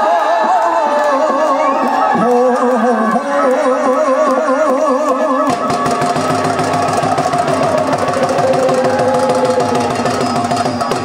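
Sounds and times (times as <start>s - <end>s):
live folk dance music: 0.0s - 11.0s.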